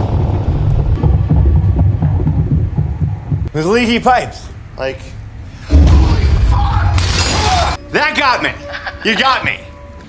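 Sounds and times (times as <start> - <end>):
tense low soundtrack score: 0.0 - 9.0
low knocking: 0.6 - 3.5.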